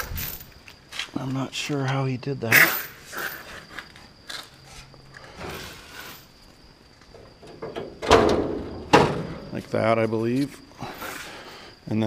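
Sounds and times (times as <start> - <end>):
hood latch clunk: 7.4 - 9.4.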